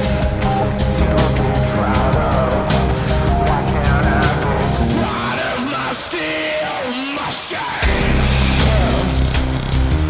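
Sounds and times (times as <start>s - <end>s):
industrial metal instrumental: 0.0s - 10.0s.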